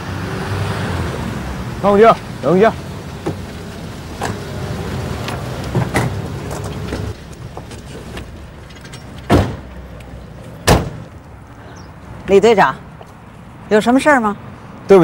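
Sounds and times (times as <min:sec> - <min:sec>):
car engine and tyre rumble: 0:00.0 - 0:15.0
car doors slamming: 0:05.7 - 0:07.1, 0:09.2 - 0:09.8, 0:10.6 - 0:11.1.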